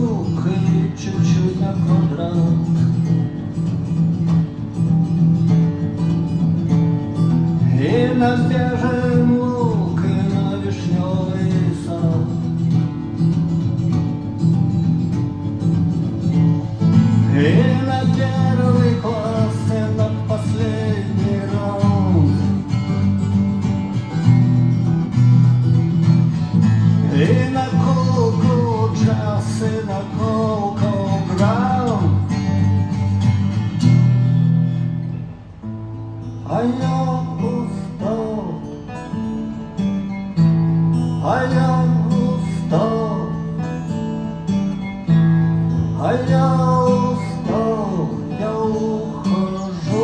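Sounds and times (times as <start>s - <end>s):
acoustic guitars playing: 0.0s - 50.0s.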